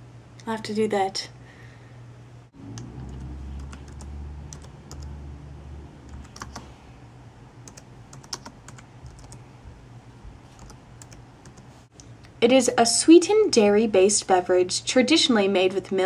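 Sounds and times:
keyboard typing: 2.7s - 5.2s, 6.0s - 6.8s, 7.6s - 9.5s, 10.4s - 11.8s.

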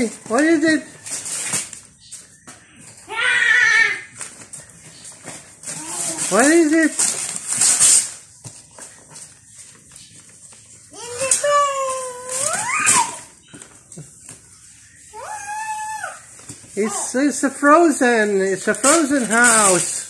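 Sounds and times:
high drawn-out vocal cries: 3.0s - 4.2s, 11.0s - 13.4s, 15.1s - 17.1s
wrapping paper ripping: 5.6s - 8.3s, 18.6s - 20.0s.

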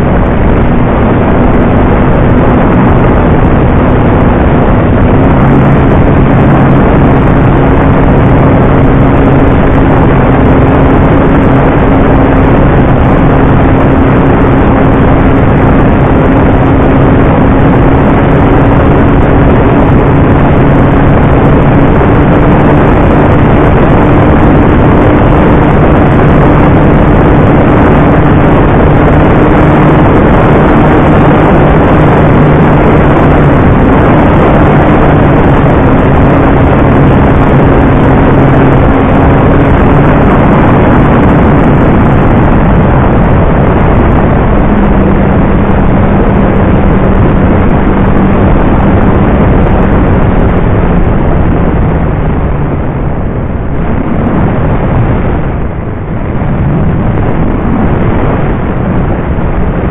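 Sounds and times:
heavy wind noise: 0.0s - 59.9s
model plane motor and propeller: 1.4s - 45.4s.

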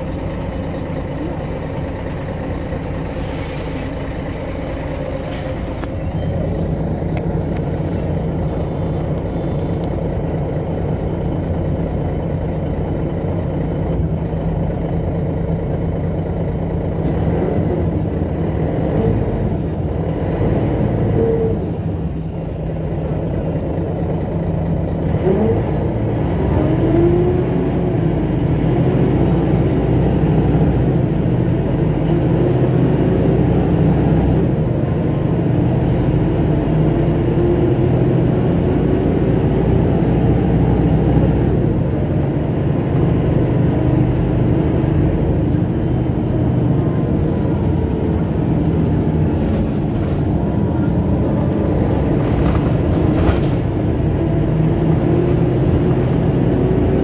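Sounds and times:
bus engine drone: 0.0s - 57.0s
road noise: 0.0s - 57.0s.

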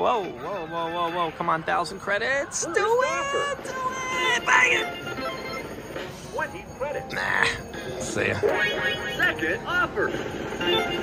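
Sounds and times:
slot machine electronic tones: 3.8s - 11.0s.

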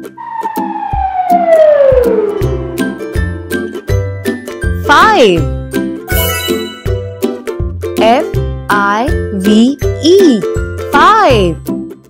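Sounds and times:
falling whistle glide: 0.0s - 3.8s
warbling cartoon tone: 0.0s - 3.8s
upbeat children's music: 3.7s - 12.0s.

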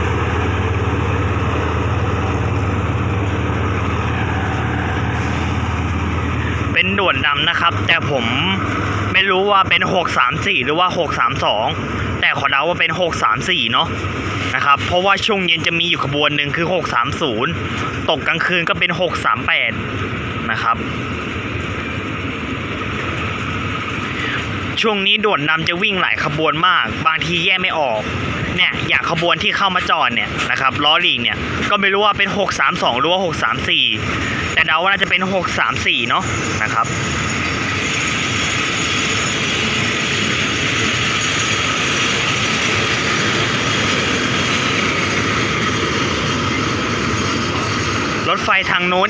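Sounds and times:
train wheels rumbling on rails: 0.0s - 49.0s.

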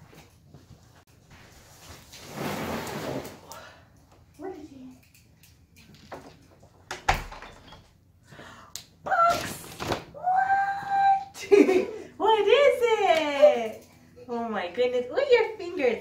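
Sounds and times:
cardboard box scraping on floor: 1.4s - 3.4s
wooden door shutting: 6.9s - 7.9s.

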